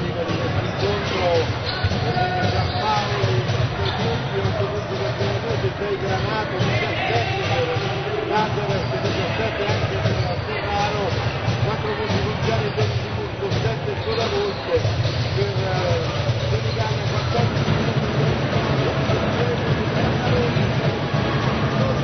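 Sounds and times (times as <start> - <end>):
basketball bouncing on court: 0.0 - 22.0
crowd voices: 0.0 - 22.0.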